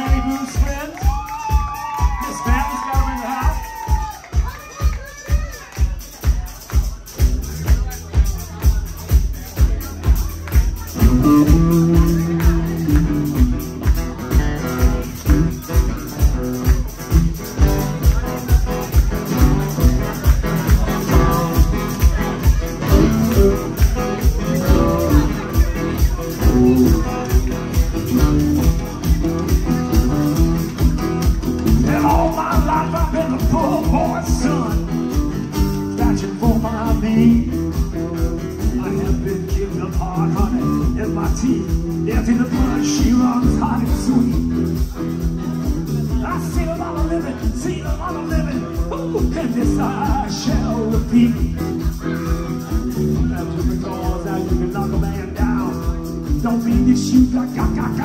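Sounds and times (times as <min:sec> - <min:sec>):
kick drum beat: 0:00.0 - 0:34.5
bass guitar: 0:00.0 - 0:58.0
electric guitar: 0:00.0 - 0:58.0
rock band playing: 0:00.0 - 0:58.0
strummed acoustic guitar: 0:09.5 - 0:58.0.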